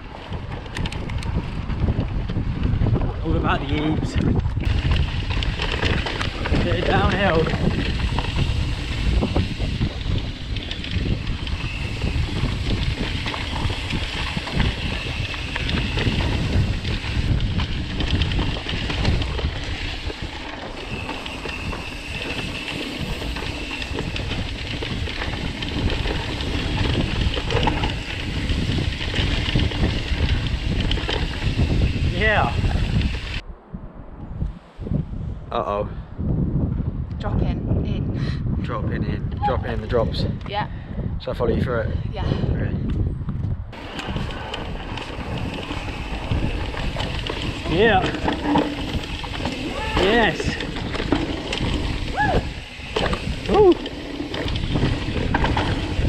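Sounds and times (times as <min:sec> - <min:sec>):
bike rattling over rough ground: 0:00.0 - 0:33.4, 0:42.4 - 0:56.0
tyres rolling on dirt: 0:00.0 - 0:33.4, 0:43.7 - 0:56.0
wind buffeting microphone: 0:00.0 - 0:56.0.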